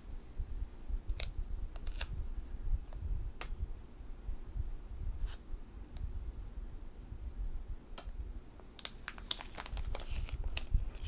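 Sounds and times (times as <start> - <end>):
plastic tape crackling: 1.1 - 2.2, 8.7 - 11.0.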